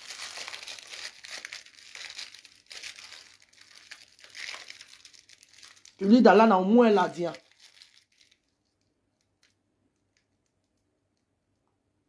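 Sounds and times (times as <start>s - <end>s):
faint crackling and rustling: 0.0s - 11.9s.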